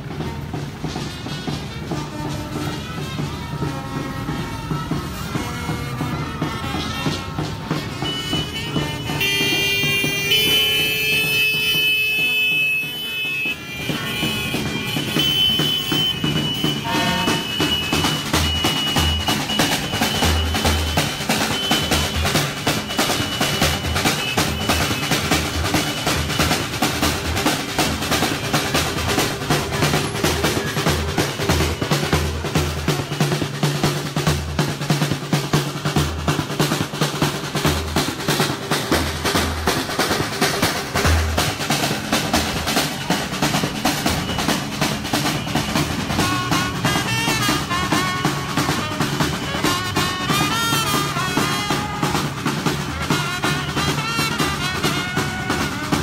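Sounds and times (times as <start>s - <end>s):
marching drum band: 0.0s - 56.0s.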